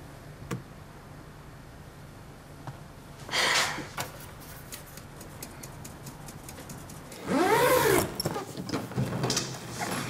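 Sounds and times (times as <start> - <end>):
suitcase zipper pulled: 7.2 - 8.2.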